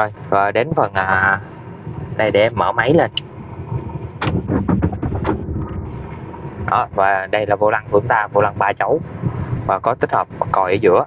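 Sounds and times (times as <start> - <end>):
engine running: 0.0 - 10.8.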